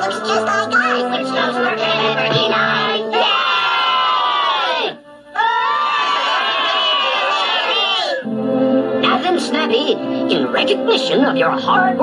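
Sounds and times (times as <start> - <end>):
cartoon voices shouting and cheering: 0.1 - 8.2.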